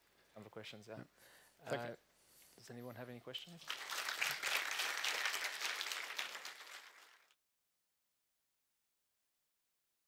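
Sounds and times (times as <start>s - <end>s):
audience applauding: 3.6s - 7.4s.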